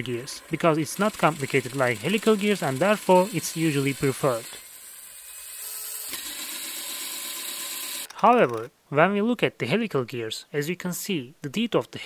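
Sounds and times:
gears turning: 0.0 - 8.7.

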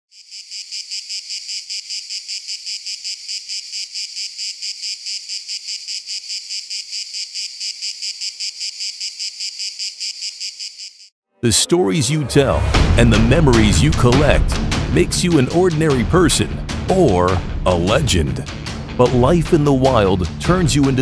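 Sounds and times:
insect chirping: 0.1 - 11.1.

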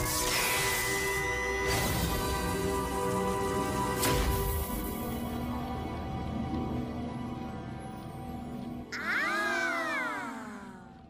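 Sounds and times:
cartoon characters exclaiming: 8.9 - 10.9.

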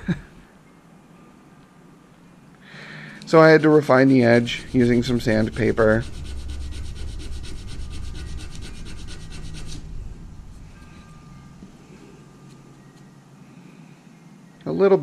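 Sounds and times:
wood rubbing on sandpaper: 3.2 - 10.0.

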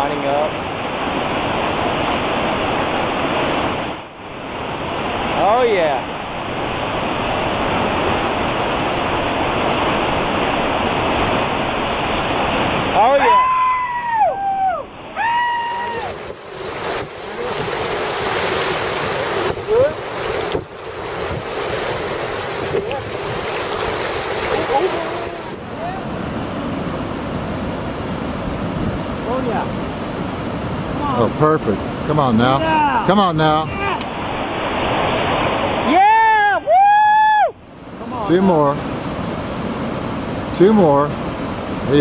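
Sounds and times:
whitewater roar: 0.0 - 42.0
people whooping and shouting: 13.2 - 16.2, 35.9 - 37.6.

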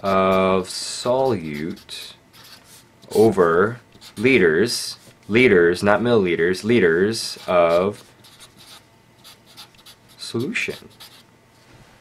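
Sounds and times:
marker writing on paper: 1.4 - 2.8, 4.0 - 4.4, 7.4 - 11.2.

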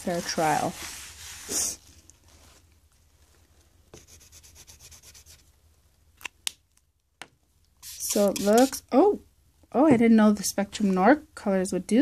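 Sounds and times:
marker tip scrubbing on mat: 7.8 - 8.8.

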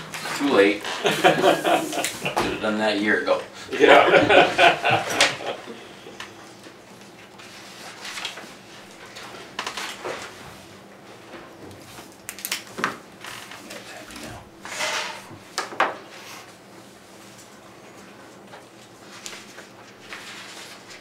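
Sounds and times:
papers rustling: 6.5 - 14.4, 18.3 - 21.0.

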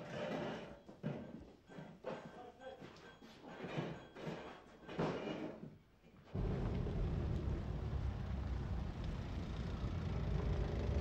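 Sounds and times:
car engine rumble: 6.4 - 11.0.

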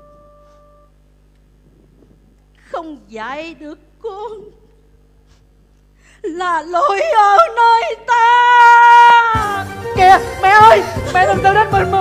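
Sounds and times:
held musical note: 0.0 - 1.0
faint low hum: 0.0 - 9.3.

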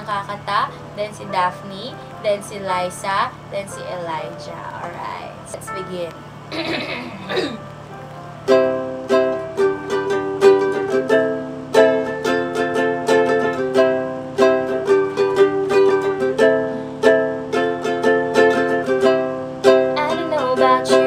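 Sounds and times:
ukulele strumming: 6.7 - 21.0
woman singing: 20.0 - 21.0.

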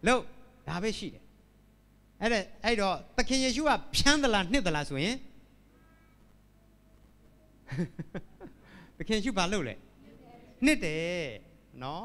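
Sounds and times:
man speaking into a microphone: 0.0 - 1.2, 2.2 - 5.3, 9.0 - 9.8, 10.6 - 12.0.

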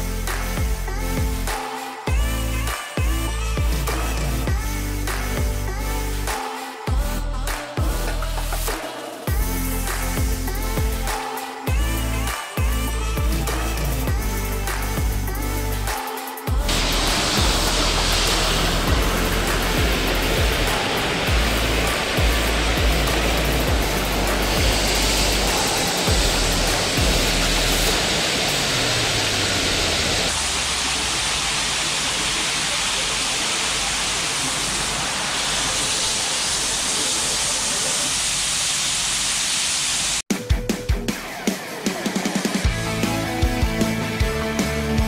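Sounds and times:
background music: 0.0 - 30.3, 40.3 - 45.0
high-pressure water spray hissing: 0.0 - 40.3.

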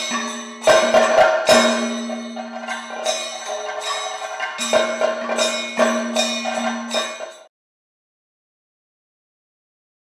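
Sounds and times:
held tone: 0.0 - 7.5
ringing metal percussion: 0.0 - 7.5.

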